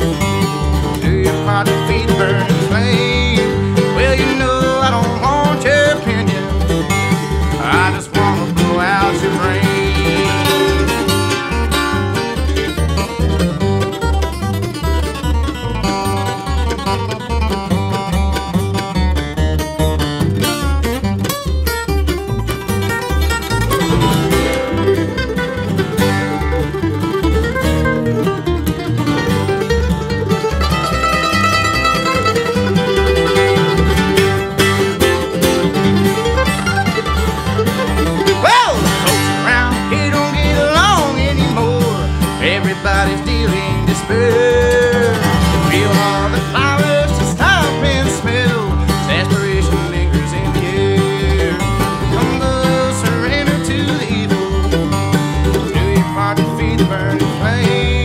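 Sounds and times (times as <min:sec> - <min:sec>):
flat-picked acoustic guitar: 0:00.0 - 0:58.0
mandolin: 0:00.0 - 0:58.0
upright bass: 0:00.0 - 0:58.0.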